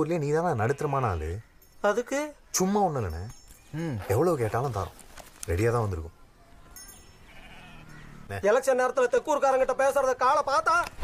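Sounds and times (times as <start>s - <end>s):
goat or sheep bleating: 7.2s - 8.3s.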